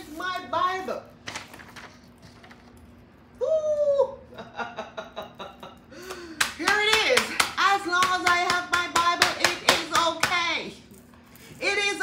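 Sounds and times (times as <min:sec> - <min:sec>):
hand claps keeping time: 0:06.1 - 0:10.5.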